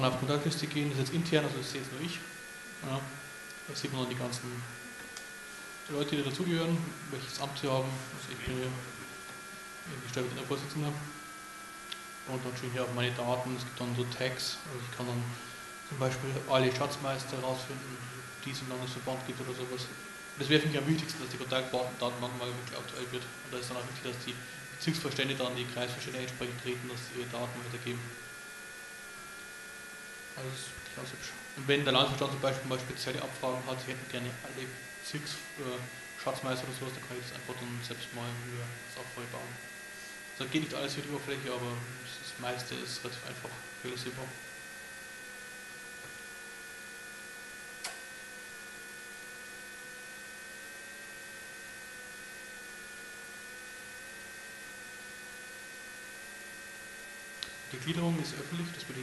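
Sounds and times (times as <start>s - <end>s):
faint high-pitched electrical hum: 0.0s - 59.0s
high wavering whine: 0.0s - 59.0s
sharp click: 47.8s - 48.1s.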